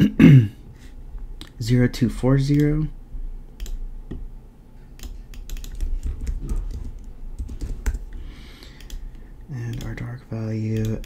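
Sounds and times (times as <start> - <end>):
keyboard typing clicks: 3.6 - 4.2, 5.0 - 11.0.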